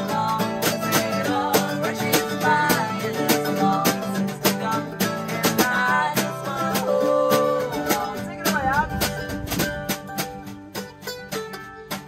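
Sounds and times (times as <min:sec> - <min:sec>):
acoustic guitar strummed: 0:00.0 - 0:12.0
mandolin: 0:00.0 - 0:12.0.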